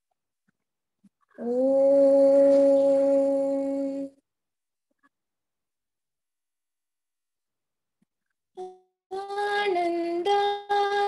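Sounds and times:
woman singing a long note: 1.4 - 4.2.

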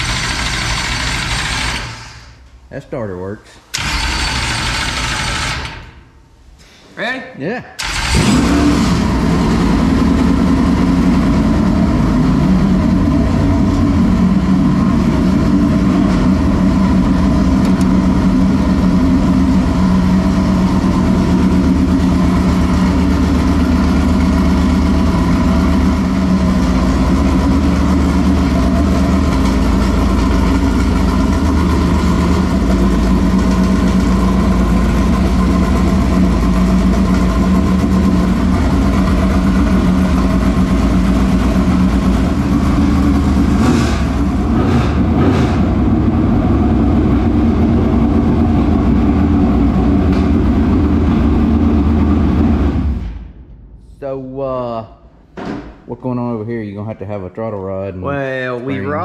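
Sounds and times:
race car engine idling: 0.0 - 2.4, 9.0 - 53.0.

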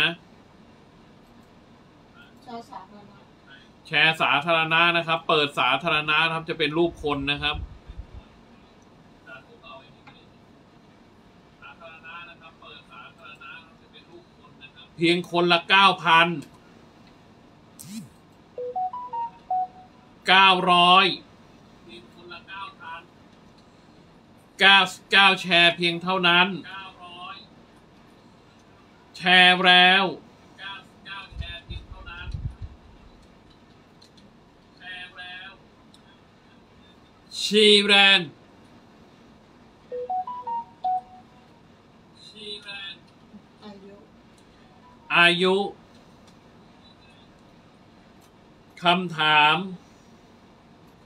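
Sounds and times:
rising electronic beeps: 18.6 - 19.9, 39.9 - 41.3.

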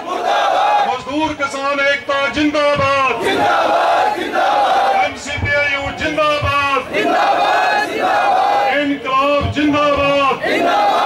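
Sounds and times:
crowd shouting slogans: 0.0 - 1.0, 3.0 - 5.2, 6.4 - 9.1, 9.8 - 11.0.

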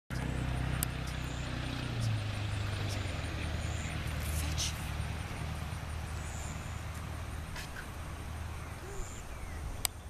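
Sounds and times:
low mechanical hum: 0.1 - 10.0.

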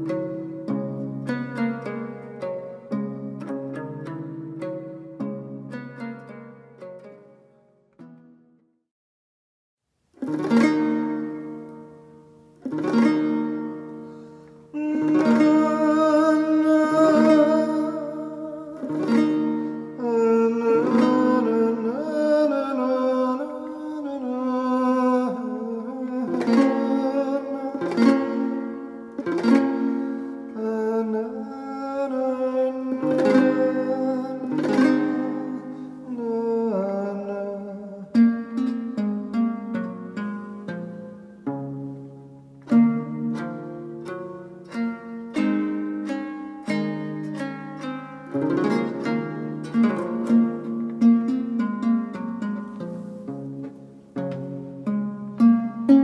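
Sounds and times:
lyre strummed chords: 0.0 - 8.6, 10.2 - 56.0.

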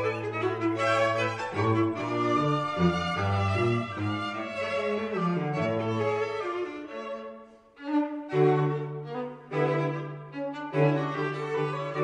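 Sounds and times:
slow string music: 0.0 - 12.0.

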